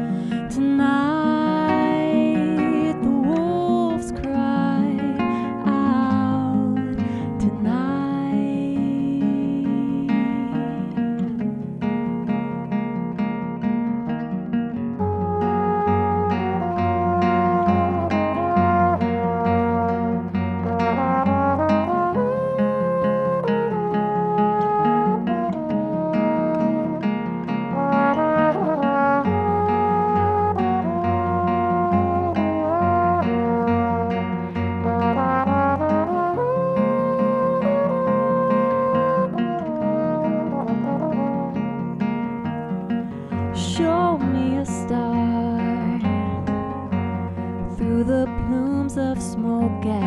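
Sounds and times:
fingerpicked classical guitar: 0.0 - 50.0
trombone melody: 15.0 - 42.4.

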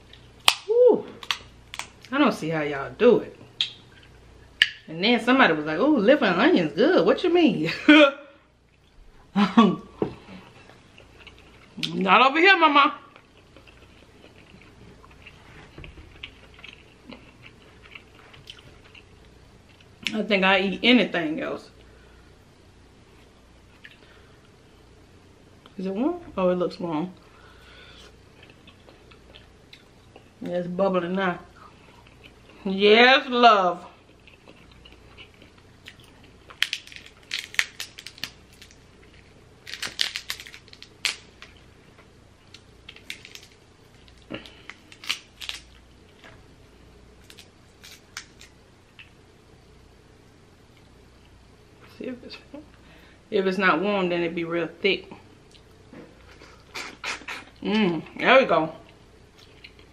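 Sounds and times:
crab shells cracking: 0.1 - 2.1, 34.4 - 41.6, 42.5 - 45.9, 47.2 - 49.2
person chewing food: 10.2 - 11.9, 13.1 - 20.0, 27.9 - 30.4, 31.6 - 32.6, 34.0 - 46.4, 58.9 - 59.9.

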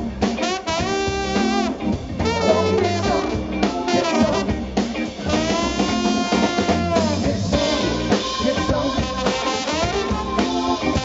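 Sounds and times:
soul blues band playing: 0.0 - 11.0.

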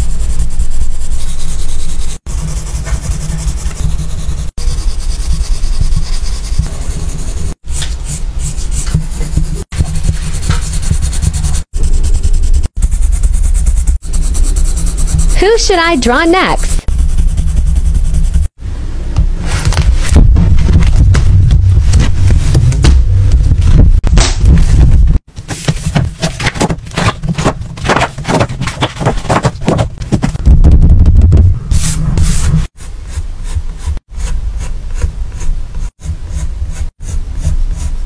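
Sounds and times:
hands rubbing sketchbook: 0.0 - 18.6, 25.5 - 30.2
pencil scratching on paper: 0.0 - 18.6, 31.7 - 38.0
low rumble: 18.6 - 25.2, 30.4 - 32.7
paper swishes: 31.7 - 33.0.

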